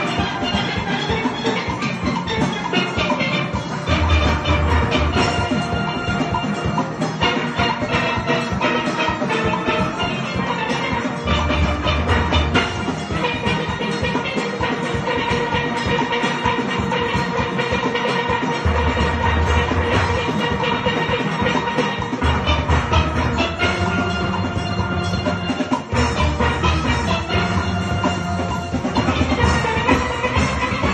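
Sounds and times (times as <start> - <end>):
steel pan band playing: 0.0 - 30.9.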